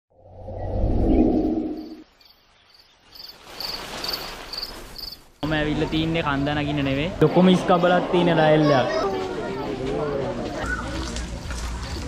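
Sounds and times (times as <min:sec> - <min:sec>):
deep rumbling swell: 0:00.2 - 0:02.0
insect chirping: 0:00.4 - 0:05.4.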